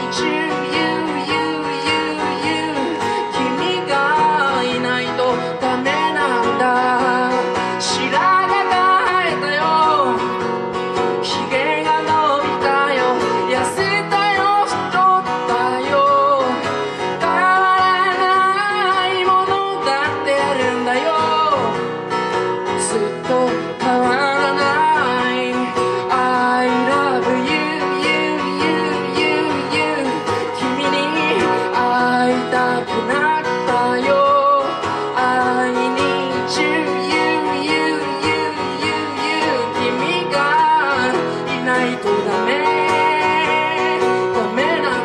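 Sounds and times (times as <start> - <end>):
man singing: 0.0 - 10.5, 11.2 - 21.8, 22.8 - 45.0
acoustic guitar strumming: 0.0 - 45.0.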